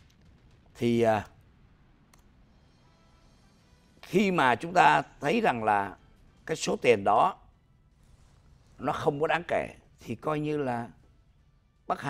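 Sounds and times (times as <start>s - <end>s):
faint steady tones: 0.0s - 12.0s
man's voice: 0.8s - 1.3s.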